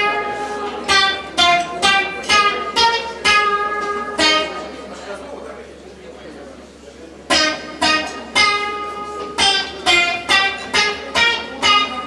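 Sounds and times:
acoustic guitar picking notes: 0:00.0 - 0:05.4, 0:07.2 - 0:12.0.

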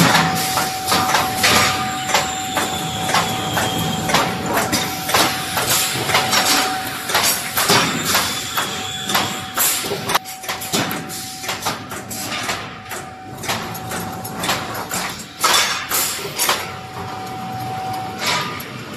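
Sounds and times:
metal clanks and knocks: 0:00.0 - 0:17.4
machine whine: 0:00.0 - 0:18.9.

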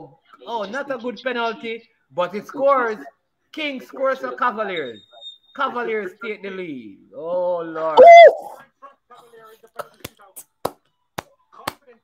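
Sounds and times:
loud cry: 0:07.9 - 0:08.6.

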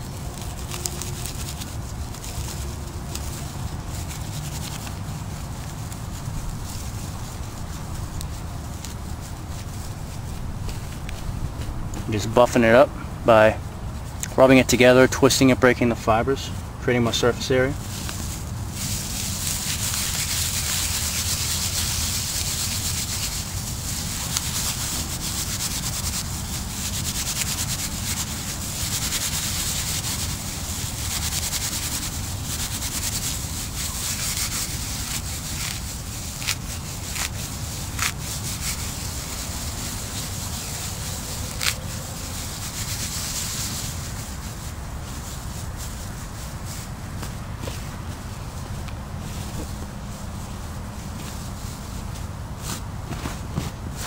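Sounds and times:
dry grass rustling in hands: 0:00.0 - 0:54.0.

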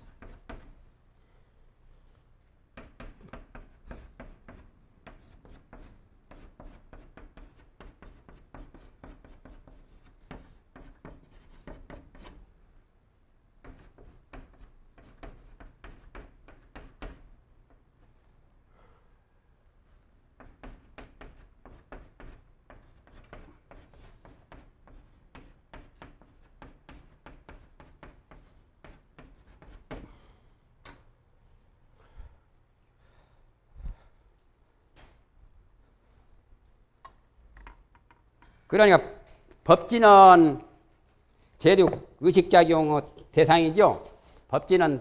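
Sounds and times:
chalk writing on blackboard: 0:00.0 - 0:00.8, 0:02.7 - 0:12.4, 0:13.6 - 0:17.4, 0:20.3 - 0:30.2.

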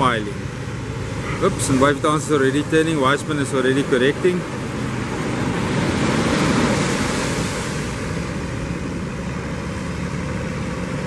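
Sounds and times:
low engine hum: 0:00.0 - 0:11.0
surf washing onto beach: 0:00.0 - 0:11.0.

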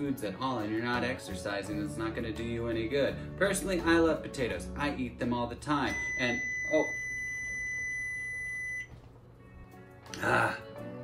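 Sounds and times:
microwave oven beep: 0:05.8 - 0:09.1.

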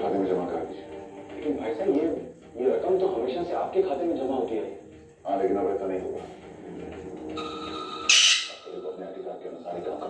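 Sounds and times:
parakeet screech: 0:07.4 - 0:08.7.

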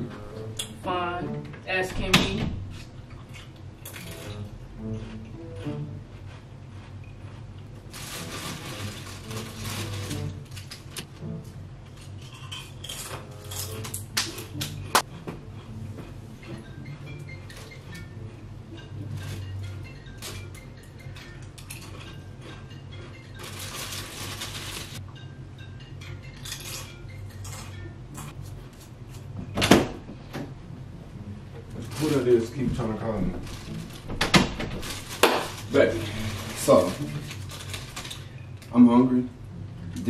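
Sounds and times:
plastic chip bag rustling: 0:07.8 - 0:11.0, 0:23.3 - 0:25.0, 0:31.7 - 0:38.8.

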